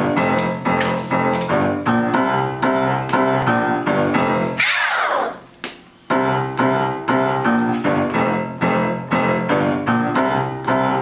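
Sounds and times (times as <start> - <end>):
piano downward glissando: 0.0 - 11.0
upright piano chords: 0.0 - 11.0.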